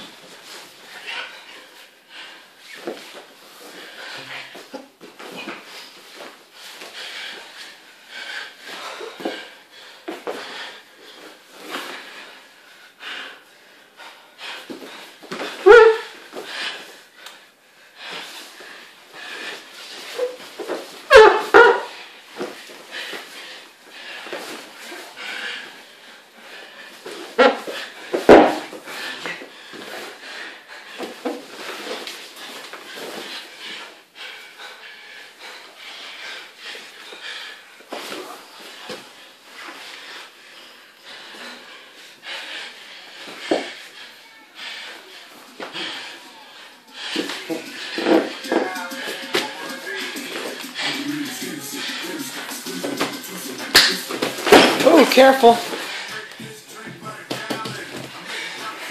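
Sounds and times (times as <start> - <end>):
heavy breathing and straining: 0.0 - 58.9.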